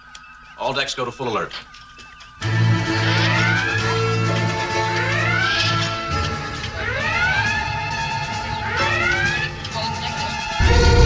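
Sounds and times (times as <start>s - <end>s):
background music electronic tones: 0.0s - 11.0s
alert klaxon whoops: 2.4s - 11.0s.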